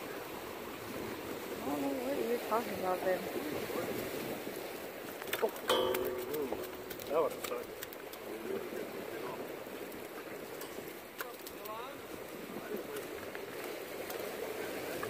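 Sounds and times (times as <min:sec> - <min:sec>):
surf against rocks: 0:00.0 - 0:15.0
wind: 0:00.0 - 0:15.0
people's voices: 0:01.6 - 0:04.0.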